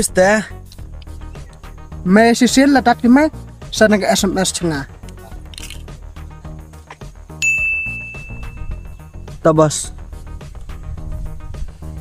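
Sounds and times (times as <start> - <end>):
background music: 0.0 - 12.0
bright ding: 7.4 - 9.0.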